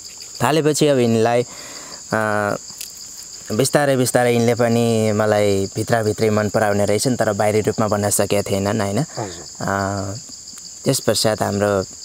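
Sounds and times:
insect chorus: 0.0 - 12.0
man speaking: 3.5 - 10.2, 10.9 - 11.9.

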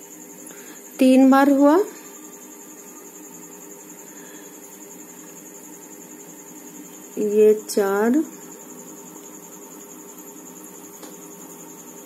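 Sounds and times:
faint high-pitched whine: 0.0 - 12.0
steady hiss: 0.0 - 12.0.

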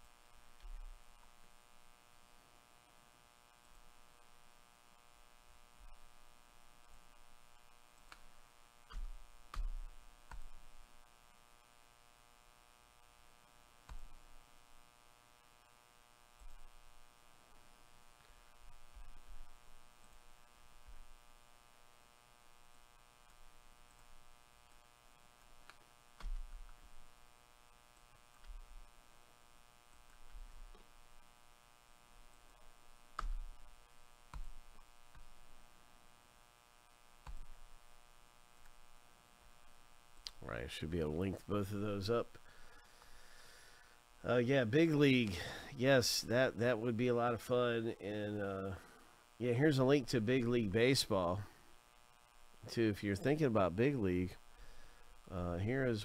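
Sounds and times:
faint electrical mains hum: 0.0 - 56.0.

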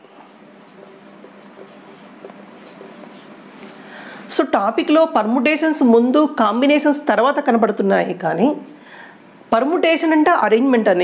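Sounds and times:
marker scratching on whiteboard: 0.0 - 3.5.

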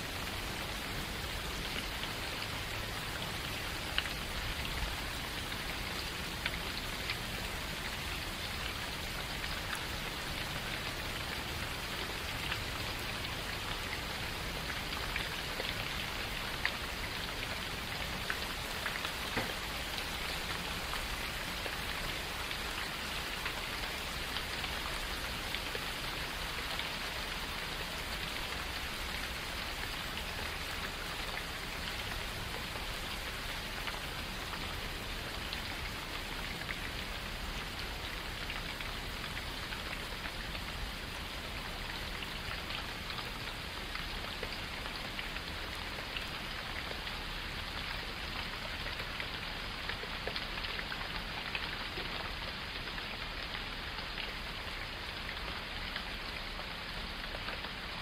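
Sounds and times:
steady rain falling: 0.0 - 58.0
raindrops ticking: 0.4 - 57.9.

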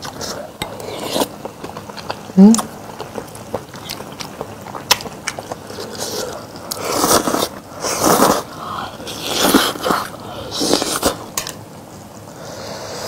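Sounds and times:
close chewing: 0.0 - 8.4.

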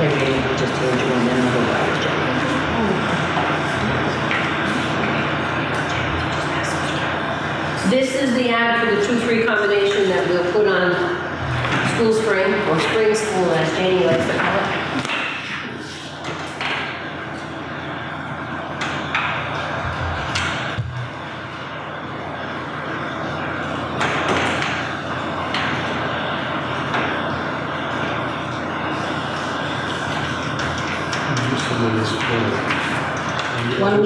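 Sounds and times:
scattered knocks and clicks: 30.0 - 33.8.

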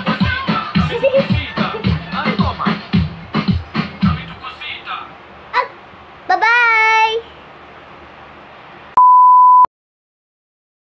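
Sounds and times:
electronic beep: 9.0 - 9.7.

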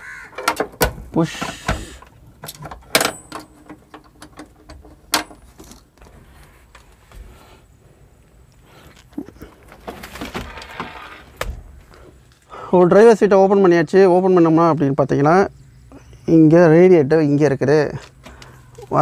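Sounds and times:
small rattles: 0.3 - 7.6.

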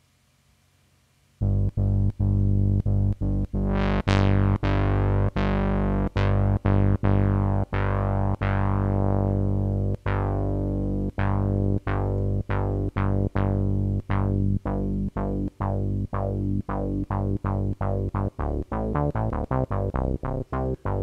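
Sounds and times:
synthesizer bass notes with filter sweep: 1.4 - 21.0.

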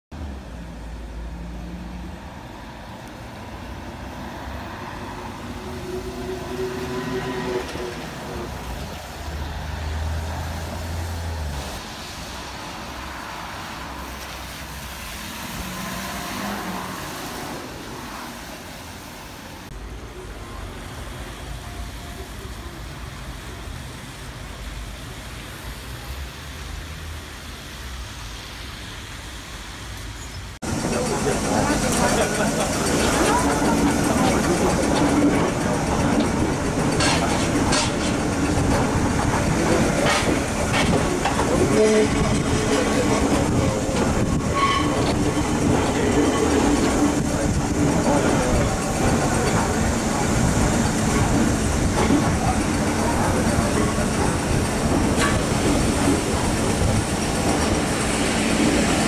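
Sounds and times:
buses driving past: 0.2 - 59.0.

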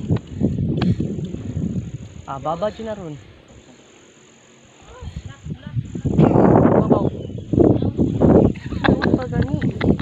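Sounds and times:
wind buffeting microphone: 0.0 - 3.5, 4.8 - 10.0.

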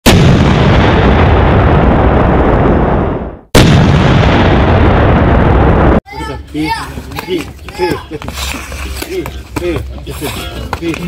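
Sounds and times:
rumbling explosion sound effect: 0.0 - 6.0.

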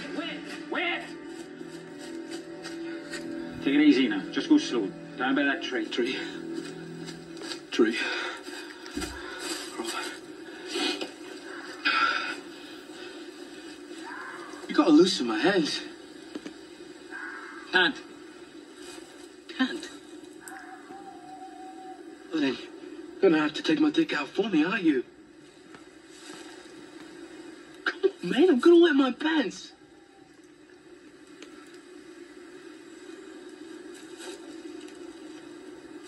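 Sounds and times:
faint steady hum: 0.0 - 36.0
film dialogue on television: 0.0 - 36.0
quiet outdoor background: 0.0 - 36.0.

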